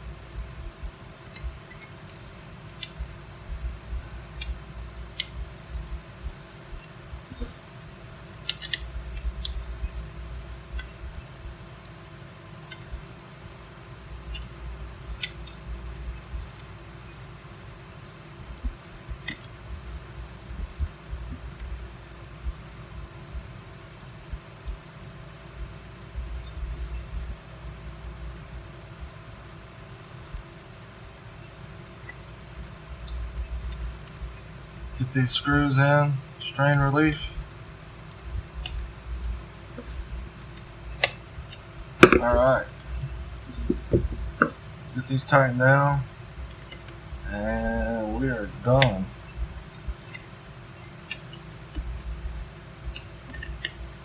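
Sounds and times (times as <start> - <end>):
faint hum: 0.0 - 54.0
handling bumps: 38.2 - 44.6.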